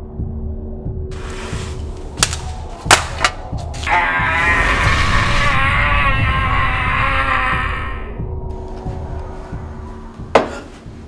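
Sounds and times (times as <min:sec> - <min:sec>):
magical sound effect: 0:03.9 - 0:07.1.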